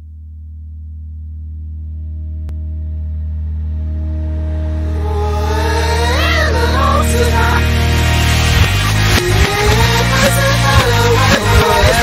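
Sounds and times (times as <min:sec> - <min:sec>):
reversed low chord: 0:00.9 - 0:12.0.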